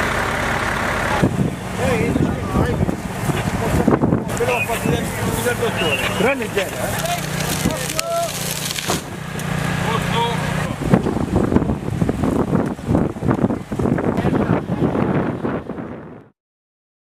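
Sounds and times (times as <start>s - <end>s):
engine hum: 0.0s - 16.3s
people talking: 1.0s - 8.5s, 9.8s - 11.1s, 14.0s - 15.2s
rumbling and knocking noise: 6.4s - 16.3s.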